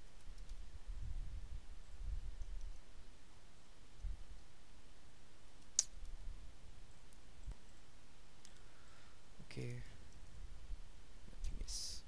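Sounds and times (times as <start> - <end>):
keyboard and mouse clicks: 0.0 - 0.6
faint room noise: 0.0 - 12.0.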